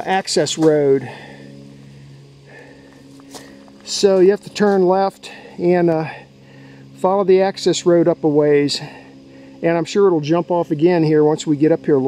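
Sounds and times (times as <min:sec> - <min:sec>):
footsteps on gravel: 0:00.0 - 0:01.4, 0:02.5 - 0:06.2
faint low hum: 0:00.0 - 0:12.0.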